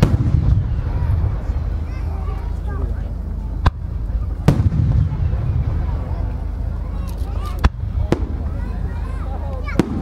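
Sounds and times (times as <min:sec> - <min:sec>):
firework bang: 0:00.0 - 0:02.6, 0:03.6 - 0:09.0, 0:09.6 - 0:10.0
low rolling echo rumble: 0:00.0 - 0:10.0.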